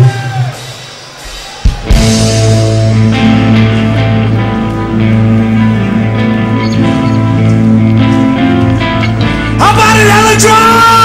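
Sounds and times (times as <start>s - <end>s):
distorted electric guitars: 0.0s - 11.0s
metal band playing live: 0.0s - 11.0s.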